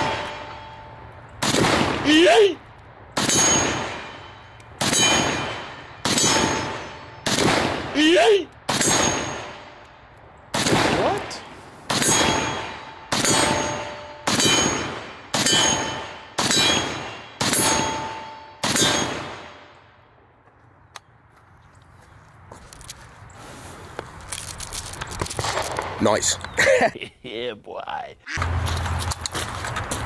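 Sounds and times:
steel target ringing: 0:00.0 - 0:01.4, 0:03.2 - 0:07.4, 0:08.6 - 0:10.2, 0:11.3 - 0:19.9
pistol shots: 0:01.4 - 0:02.2, 0:04.8 - 0:08.0, 0:08.7 - 0:09.7, 0:10.5 - 0:19.7.

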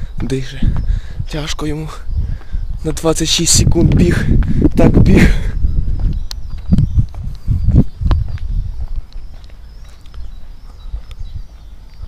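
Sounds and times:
footsteps on paving: 0:00.3 - 0:12.0
camera being jostled thumps: 0:05.9 - 0:10.3.

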